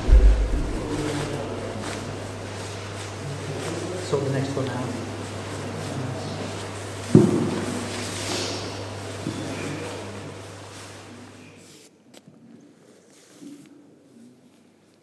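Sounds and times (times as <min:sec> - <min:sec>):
loud thump: 0:00.0 - 0:01.5
steady low hum: 0:00.0 - 0:03.6.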